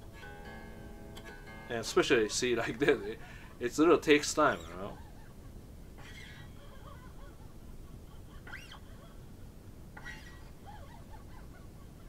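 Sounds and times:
unamplified electric guitar strings: 0.0s - 5.2s
fingers squeaking along strings: 0.0s - 5.4s, 6.0s - 6.8s, 8.5s - 8.9s, 10.0s - 10.7s.

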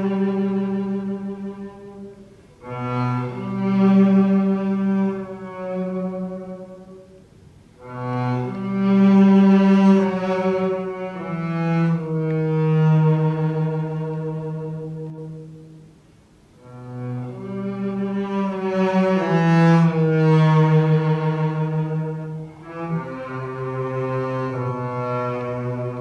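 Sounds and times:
bowed double bass: 0.0s - 26.0s.

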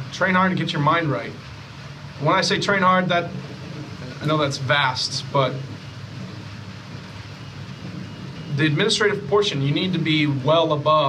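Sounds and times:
faint hiss: 0.0s - 11.0s
low background rumble: 0.0s - 11.0s.

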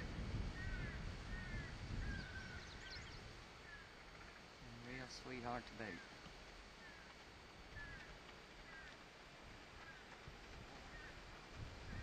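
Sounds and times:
faint outdoor ambience: 0.0s - 12.0s
bird chirping: 0.6s - 4.5s, 6.8s - 7.1s, 7.7s - 9.0s, 10.8s - 11.3s.

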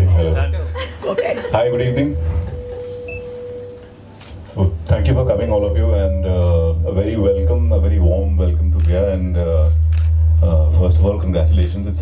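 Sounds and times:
microphone feedback tone: 1.5s - 4.6s
low hum: 1.5s - 12.0s.

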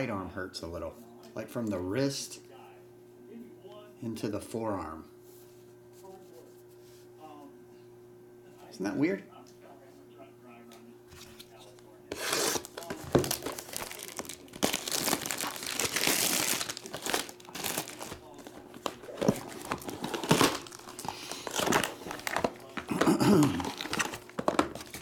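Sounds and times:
plastic shrink-wrap crinkling and tearing: 12.1s - 25.0s.

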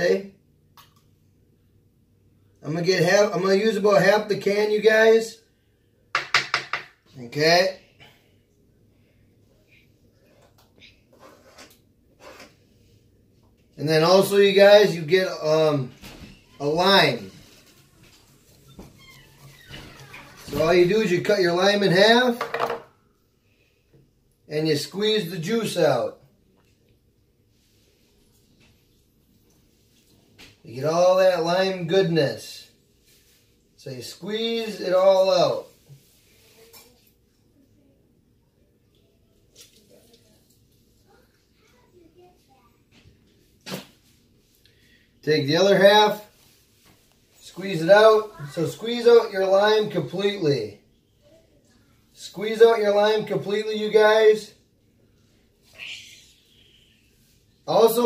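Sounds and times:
faint scraping on cutting board: 11.1s - 12.7s.

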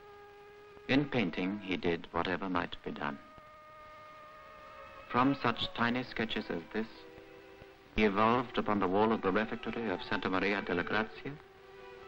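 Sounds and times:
faint two-tone whine: 0.0s - 12.0s
film soundtrack hiss: 0.0s - 12.0s.

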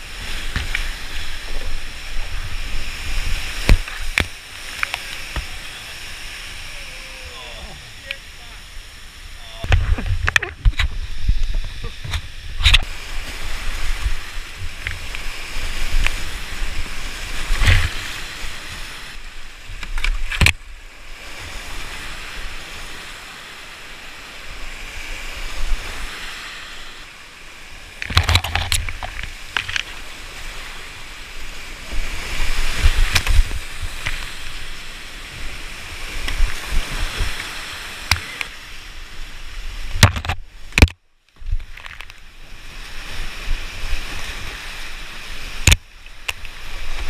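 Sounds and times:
rushing whitewater: 0.0s - 40.9s, 42.2s - 47.0s.

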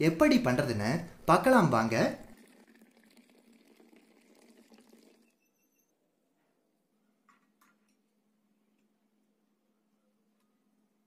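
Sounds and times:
tea pouring into a glass: 2.0s - 5.4s.

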